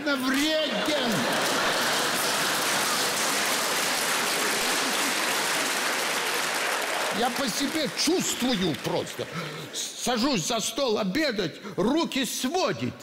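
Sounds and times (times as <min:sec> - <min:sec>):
comedian speaking: 0:00.0 - 0:01.4, 0:07.1 - 0:13.0
audience applauding: 0:00.1 - 0:09.8.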